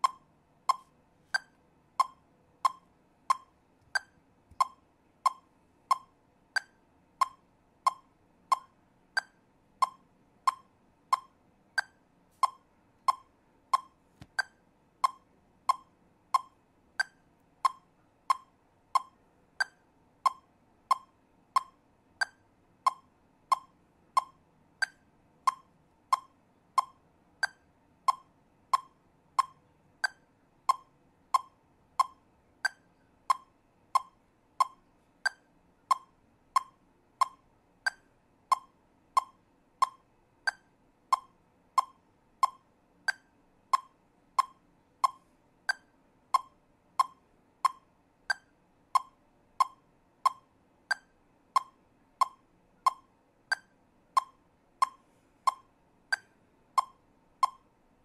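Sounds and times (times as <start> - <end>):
metronome clicking: 0.0 - 57.7.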